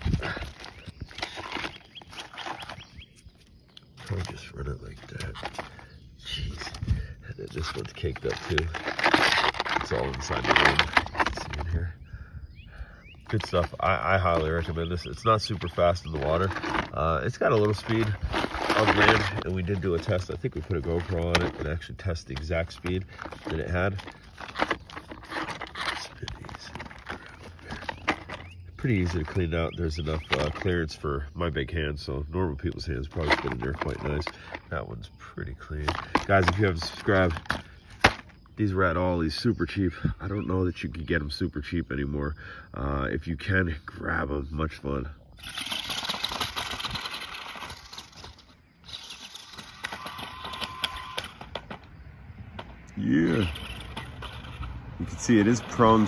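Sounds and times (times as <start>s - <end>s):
toy truck tyres crunching gravel: 0.0s - 12.0s, 13.1s - 40.4s, 42.8s - 56.0s
gravel clicks: 0.0s - 56.0s
fingers scraping grass from wheel: 7.5s - 11.8s, 13.3s - 31.0s, 45.4s - 51.2s, 53.0s - 56.0s.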